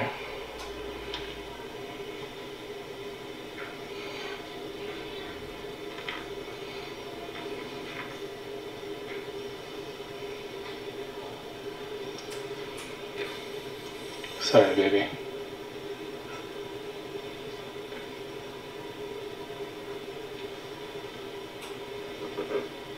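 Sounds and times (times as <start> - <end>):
steady low hum: 0.0 - 22.9.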